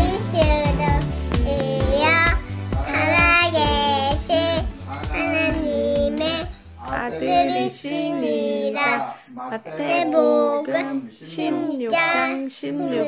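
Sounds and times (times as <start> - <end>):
backing music with steady beat: 0.0 - 7.7
child singing: 0.0 - 13.0.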